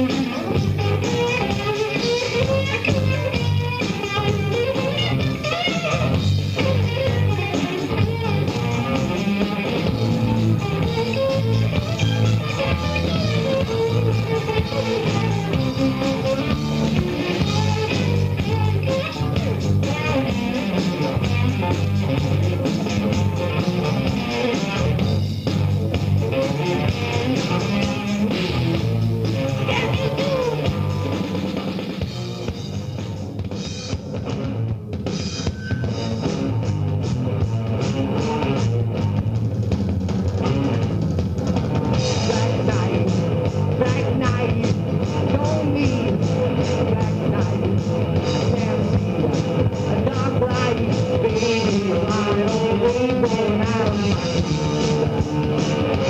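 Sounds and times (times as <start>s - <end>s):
hard rock band playing: 0.0s - 56.0s.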